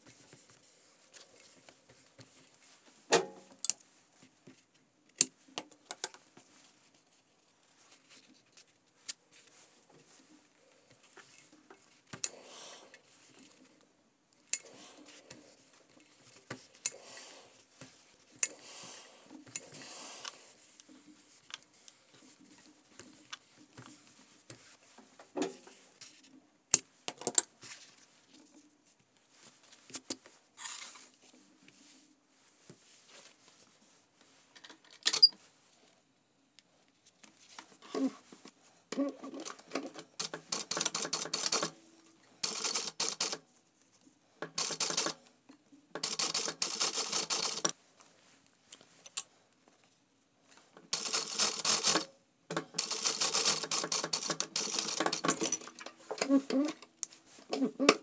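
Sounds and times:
sewing machine stitching fabric: 39.2s - 41.8s, 46.0s - 47.7s, 51.0s - 56.8s.

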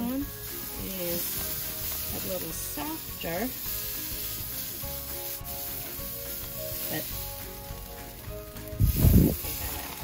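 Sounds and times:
steak sizzling on a grill: 0.0s - 10.0s.

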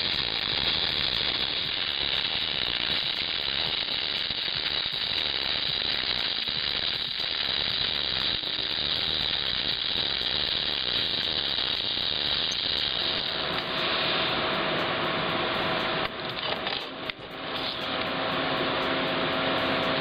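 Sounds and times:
electric arc welding crackle: 0.0s - 20.0s.

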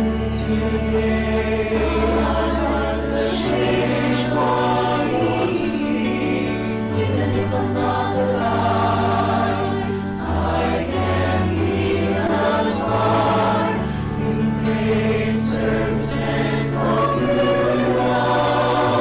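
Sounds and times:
choir singing a slow prayer: 0.0s - 19.0s.

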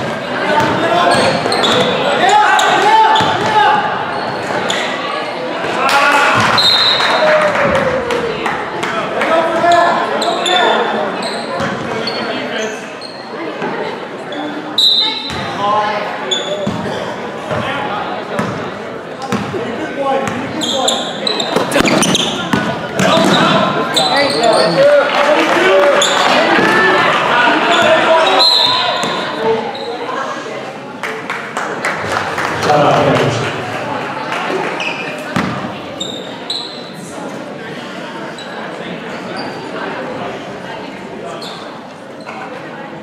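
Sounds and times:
sneaker squeaks: 0.0s - 5.0s, 6.4s - 7.2s, 9.6s - 13.7s, 14.3s - 15.6s, 16.2s - 17.7s, 20.2s - 24.9s, 26.0s - 26.7s, 27.6s - 30.2s, 34.8s - 37.1s, 38.3s - 39.8s, 41.3s - 42.5s
people talking and shouting: 0.0s - 43.0s
basketball bouncing on court: 19.3s - 19.6s, 21.6s - 23.6s, 35.3s - 35.7s.

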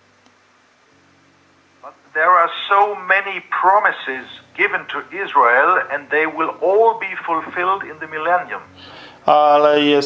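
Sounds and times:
man talking over video call: 1.8s - 8.6s, 9.2s - 10.0s.

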